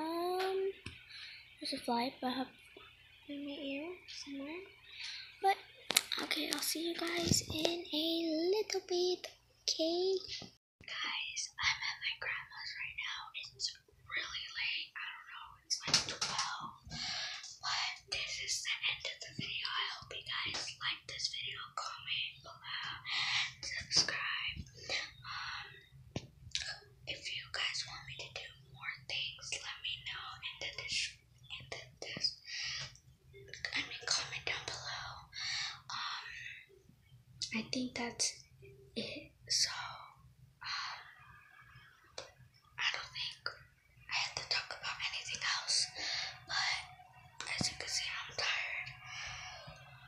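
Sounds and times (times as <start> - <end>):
faint low hum: 0.0 - 50.0
girl whispering: 3.3 - 4.7, 5.4 - 16.8, 39.0 - 41.1, 42.8 - 49.7.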